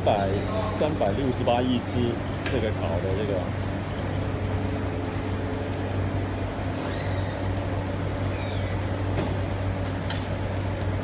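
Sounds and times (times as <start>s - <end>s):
kitchen fan humming: 0.0s - 11.0s.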